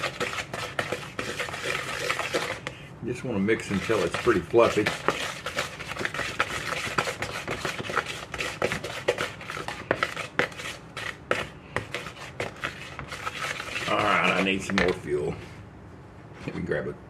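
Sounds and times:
wooden spoon scraping bowl: 0.0 - 2.8, 3.4 - 15.6.

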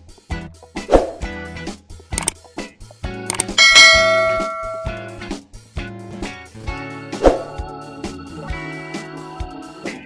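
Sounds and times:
quick clicks: 2.1 - 2.4, 3.3 - 3.6
guitar music: 3.3 - 5.3
bell ding: 3.6 - 5.2.

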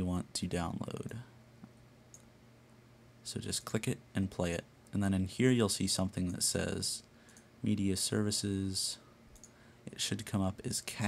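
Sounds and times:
low electrical hum: 0.0 - 11.0
computer mouse clicks: 9.3 - 9.6.

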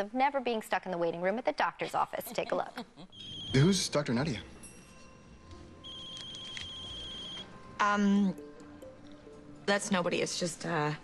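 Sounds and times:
faint background music: 0.0 - 11.0
mobile phone ringing: 3.1 - 3.9, 4.7 - 7.7.

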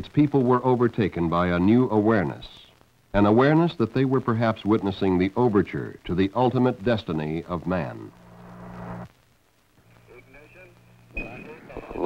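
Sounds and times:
radio hum with hiss: 0.0 - 12.0.

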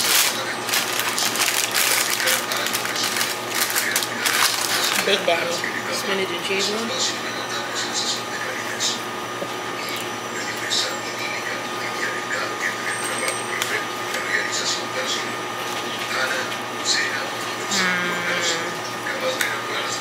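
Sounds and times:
crispy food crunching: 0.0 - 5.5
electrical appliance hum: 0.0 - 20.0.

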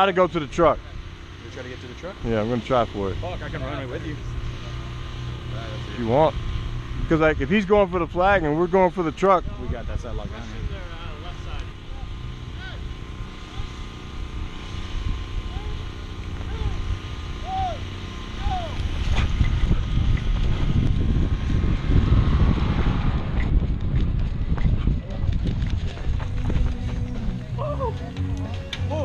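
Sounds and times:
wind rumbling on microphone: 6.4 - 28.1
distant shouts: 15.4 - 19.2.

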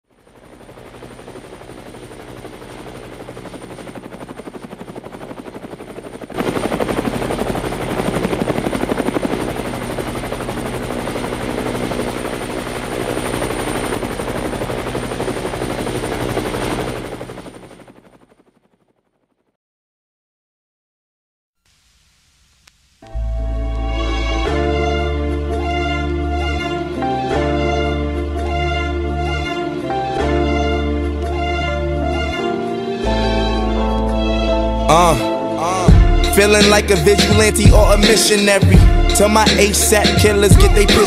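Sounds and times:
helicopter rotor chopping: 0.0 - 19.5, 34.9 - 41.0.

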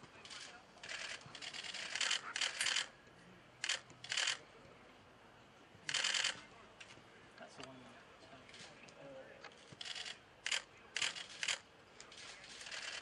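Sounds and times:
camera shutters clicking rapidly: 0.2 - 2.9, 3.6 - 4.4, 5.9 - 6.4, 9.7 - 13.0.

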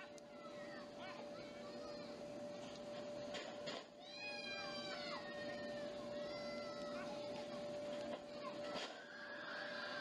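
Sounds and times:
steady high hum: 0.0 - 10.0.

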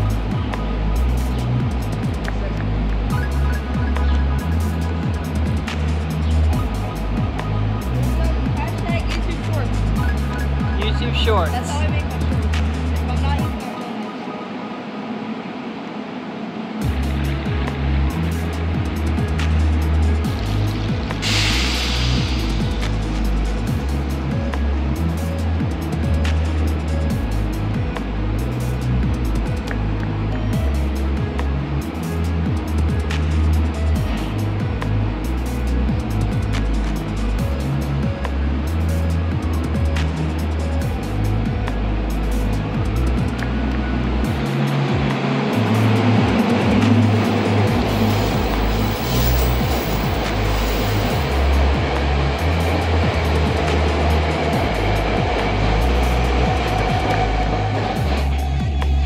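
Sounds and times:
background music with stepped bass: 0.0 - 13.7, 16.8 - 59.0
electric train rolling past: 0.0 - 59.0.

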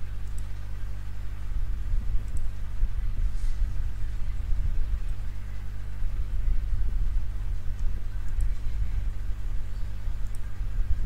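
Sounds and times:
electrical hum: 0.0 - 11.0
steady low rumble: 0.0 - 11.0.

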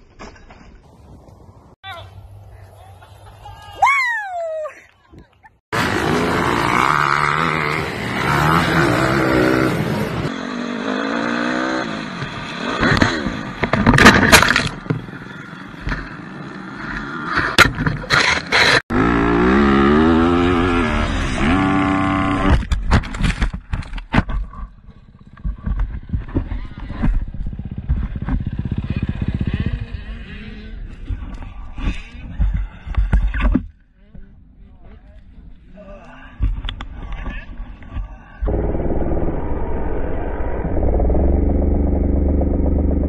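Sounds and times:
dirt bike engine revving: 5.7 - 13.5, 18.2 - 22.6, 27.4 - 30.9
rough noise with knocks: 12.2 - 15.1
bike crashing with knocks: 12.8 - 15.1.

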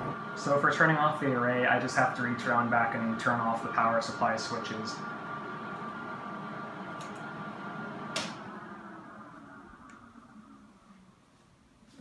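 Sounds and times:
cooling fans whining: 0.0 - 12.0
power switches clicking: 7.0 - 7.3, 8.1 - 8.5.

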